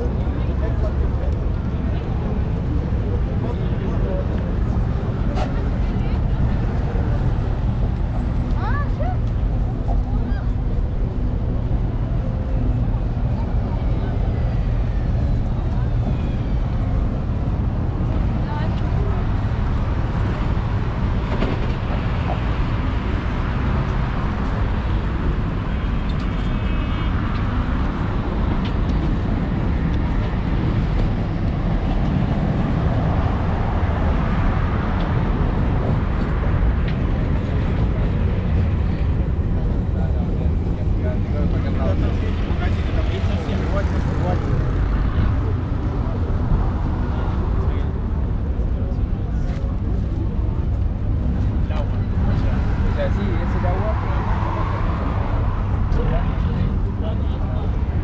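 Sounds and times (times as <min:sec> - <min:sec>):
passers-by talking: 0:00.0 - 0:58.0
road traffic rumble: 0:00.0 - 0:58.0.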